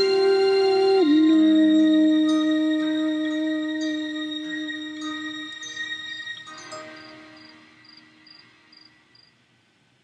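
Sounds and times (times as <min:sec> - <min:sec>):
faint held chord: 0:00.0 - 0:09.2.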